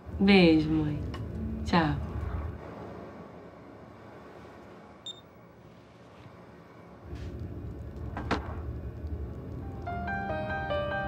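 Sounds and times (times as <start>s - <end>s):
mobile phone beep: 5.0s - 5.2s.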